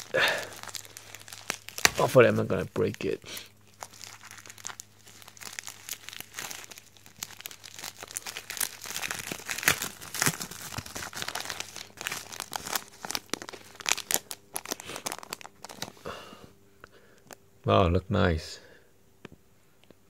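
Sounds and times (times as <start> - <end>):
paper envelope tearing: 0.0 - 16.0
plastic sleeve crinkling: 0.0 - 16.0.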